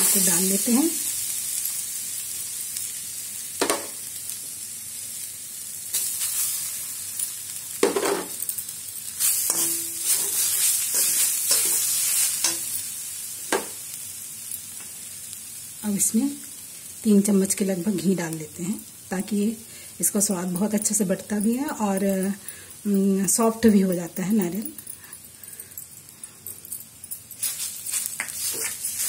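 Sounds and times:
coconut sizzling in a pan: 0.0 - 29.0
steel spatula scraping: 9.2 - 12.9, 27.3 - 29.0.

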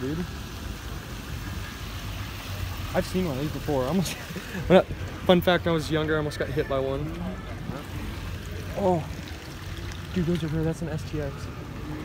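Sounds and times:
outdoor background noise: 0.0 - 12.0
vehicle engine rumbling: 0.0 - 12.0.

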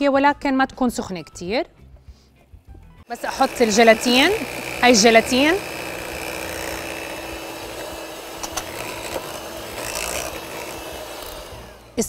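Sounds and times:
electric hand mixer running: 3.1 - 12.0.

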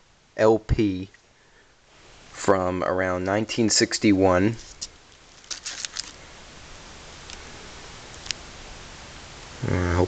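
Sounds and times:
low hiss of room tone: 0.0 - 10.0
faint tick of record sleeve: 7.2 - 7.5, 8.1 - 8.5.

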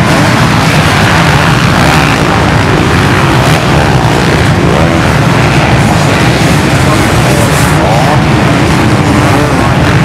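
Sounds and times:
off-road motorcycles racing past: 0.0 - 10.0.

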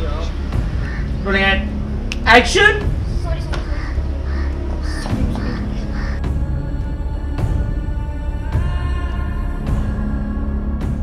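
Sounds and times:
music: 0.0 - 11.0
crows cawing: 0.6 - 1.8, 3.4 - 6.7.

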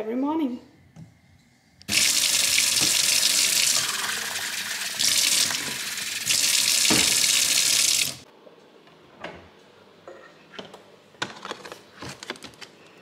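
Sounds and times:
tap turning on and off: 1.8 - 8.2
water running into a steel sink: 1.9 - 8.2.

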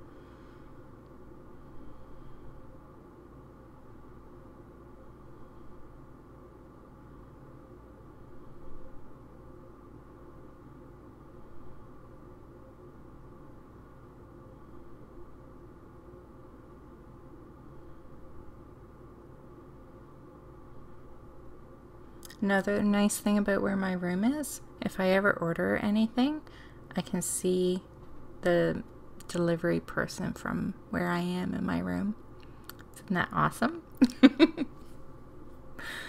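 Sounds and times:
background hum and hiss: 0.0 - 36.0.

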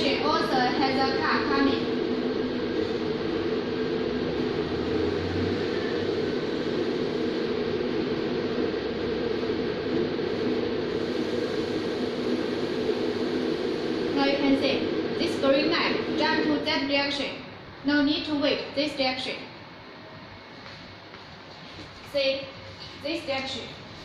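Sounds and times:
steady hum and hiss: 0.0 - 24.0.

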